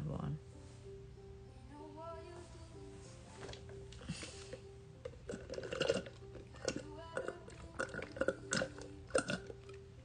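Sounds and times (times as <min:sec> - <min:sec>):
slurping through a straw: 0:05.2 - 0:09.6.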